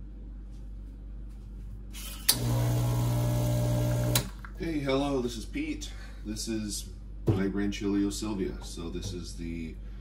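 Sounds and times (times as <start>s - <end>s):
espresso pump humming: 2.0s - 4.4s.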